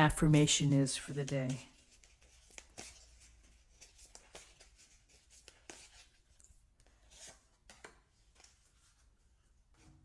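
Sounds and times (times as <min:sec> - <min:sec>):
cards being shuffled: 0:01.2 - 0:09.0.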